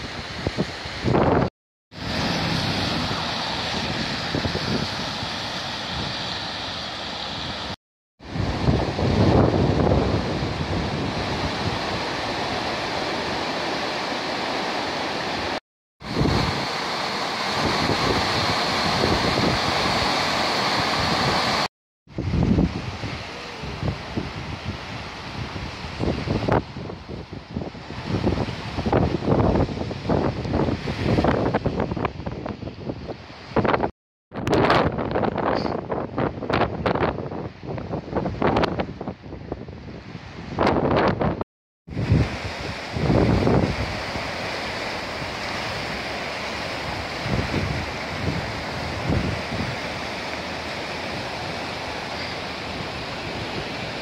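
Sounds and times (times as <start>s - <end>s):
wind buffeting microphone: 0.0s - 13.4s, 15.3s - 44.4s, 46.8s - 54.0s
floodwater rushing: 0.0s - 32.4s, 41.9s - 54.0s
water churning over a weir: 0.0s - 35.2s, 40.3s - 54.0s.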